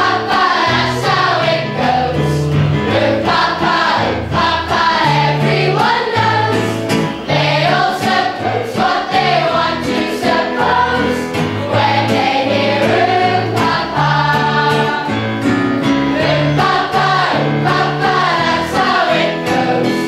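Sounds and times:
young voices singing in chorus: 0.0 - 15.3, 16.1 - 20.0
instrumental accompaniment: 0.0 - 20.0.

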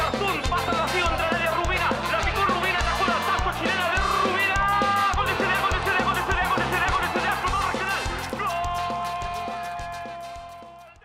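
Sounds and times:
drums and bass beat: 0.0 - 11.0.

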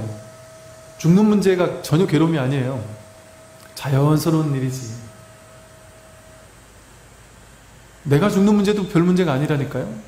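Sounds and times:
faint thin tone: 0.0 - 6.5
background hiss and hum: 0.0 - 10.0.

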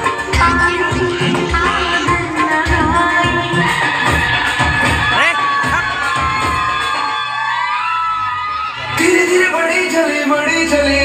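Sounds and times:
dance music: 0.0 - 11.0
children cheering and shouting: 0.1 - 2.8, 3.5 - 9.6.

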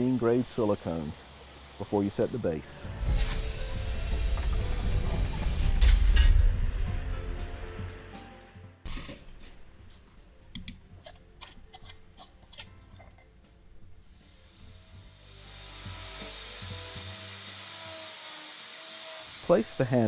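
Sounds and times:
cloth rubbing hiss: 2.9 - 5.8, 14.1 - 20.0.

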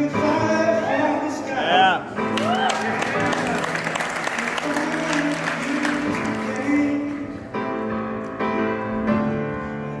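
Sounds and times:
upright piano playing: 0.0 - 10.0
audience applauding: 2.3 - 7.0.

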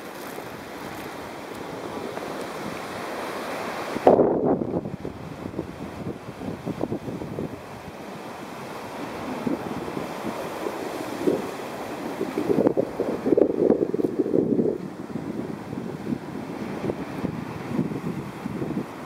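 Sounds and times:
waves breaking on beach: 0.0 - 19.0
wind on microphone: 0.0 - 19.0.

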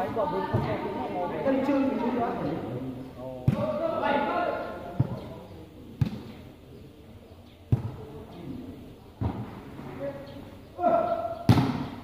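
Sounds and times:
voices calling out: 0.0 - 12.0
volleyball thumps: 7.7 - 8.1, 11.4 - 12.0.

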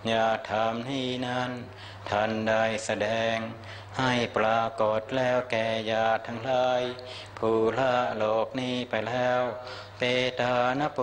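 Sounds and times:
monks chanting together: 0.0 - 11.0.

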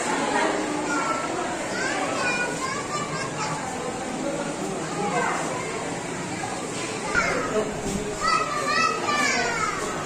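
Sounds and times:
children's voices: 0.0 - 10.0
crowd talking: 0.0 - 10.0.

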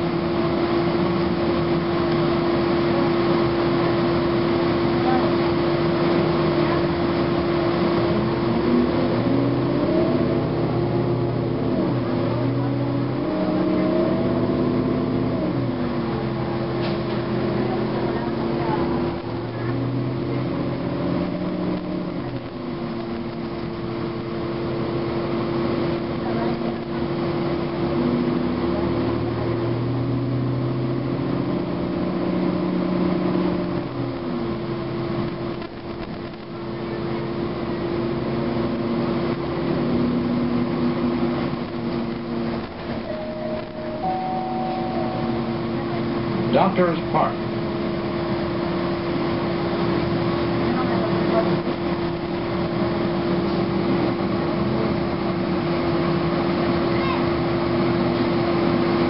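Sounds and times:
bus diesel engine running: 0.0 - 59.0
steady whine: 30.9 - 59.0.

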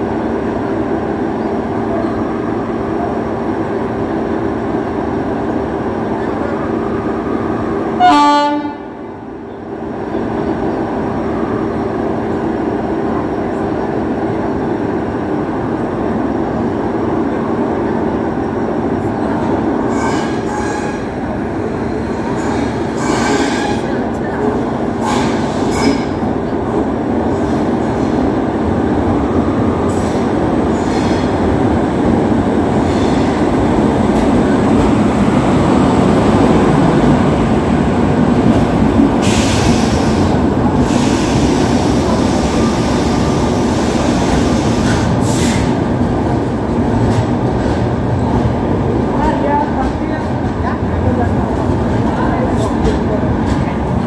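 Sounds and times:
train wheels rumbling on rail: 0.0 - 54.0.

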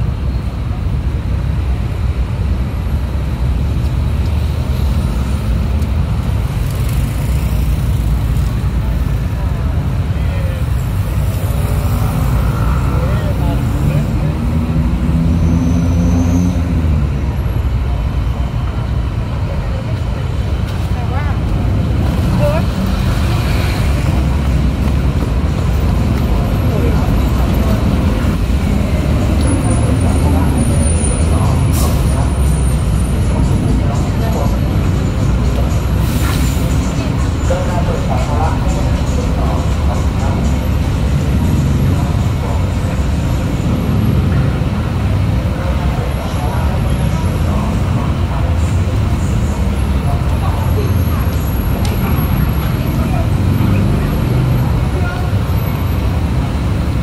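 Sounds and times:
traffic rumble: 0.0 - 57.0
passersby talking: 5.1 - 57.0.

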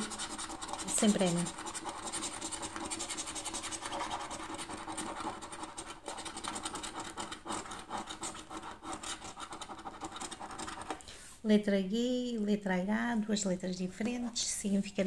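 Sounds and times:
coin scratching scratchcard: 0.0 - 11.0.

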